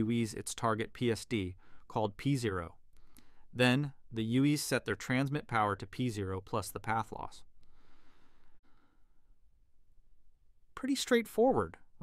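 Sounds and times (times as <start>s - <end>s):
faint breath: 1.6s - 1.9s, 2.9s - 3.5s, 7.6s - 9.4s.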